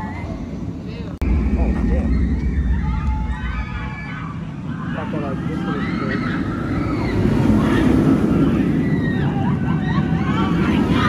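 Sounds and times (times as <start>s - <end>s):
indistinct outdoor voices: 0.0s - 11.0s
wind rumble on microphone: 0.0s - 11.0s.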